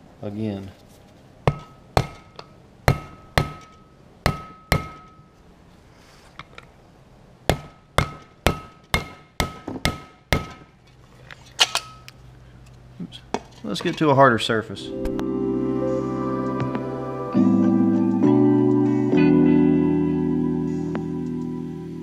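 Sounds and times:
mallet striking metal driver: 1.5s - 5.3s, 7.5s - 10.7s.

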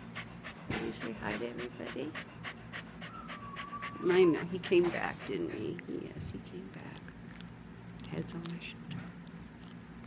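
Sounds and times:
dog panting: 0.0s - 7.4s.

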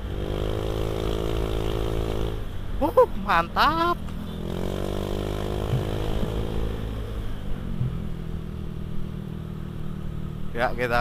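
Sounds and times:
road and wind noise: 0.0s - 11.0s
scooter engine cruising: 0.0s - 11.0s.

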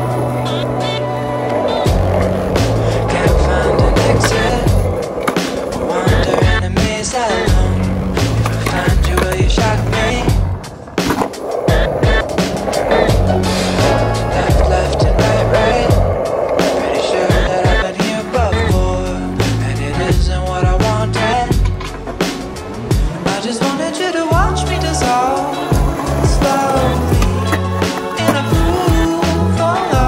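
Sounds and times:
skateboard clacks: 0.0s - 30.0s
skateboard wheels rolling on asphalt: 0.0s - 30.0s
music with repeating bass line: 1.7s - 5.1s, 6.0s - 10.6s, 12.8s - 16.2s, 17.3s - 23.2s, 24.3s - 30.0s.

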